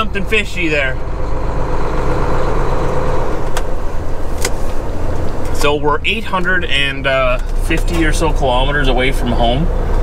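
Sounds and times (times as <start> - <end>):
diesel truck engine running: 0.0 - 10.0.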